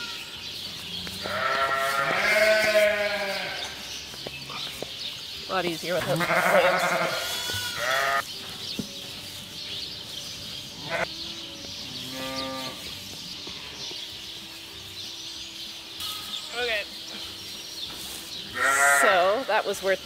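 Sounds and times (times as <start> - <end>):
sheep bleating: 1.2 - 3.8, 6.0 - 8.2, 10.8 - 11.1, 18.5 - 19.5.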